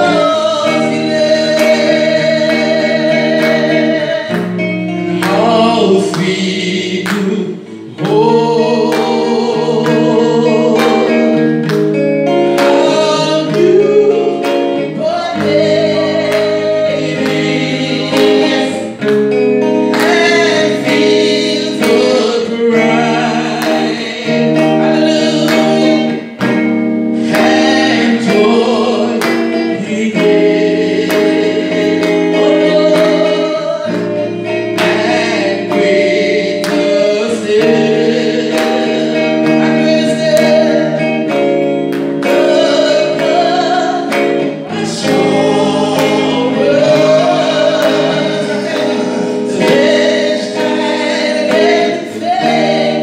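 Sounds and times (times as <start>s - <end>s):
woman singing gospel: 0.0s - 11.5s, 12.4s - 26.6s, 27.2s - 53.0s.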